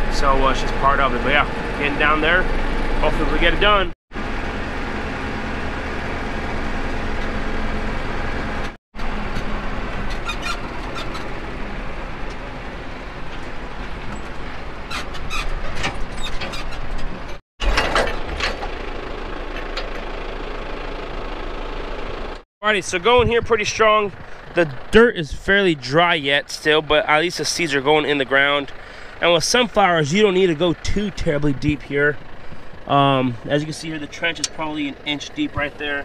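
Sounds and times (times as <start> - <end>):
tractor engine running: 0.0 - 36.0.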